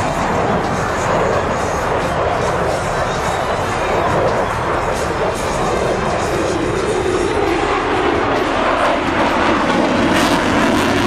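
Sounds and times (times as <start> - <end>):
jet engine rushing: 0.0 - 11.0.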